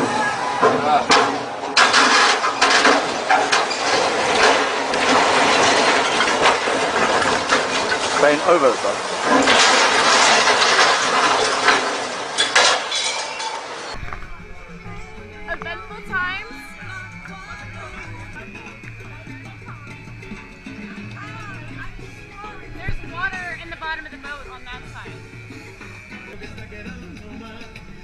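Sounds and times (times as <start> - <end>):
crane crashing into water: 0.0 - 14.0
salsa music: 13.9 - 28.0
people's voices: 14.0 - 28.0.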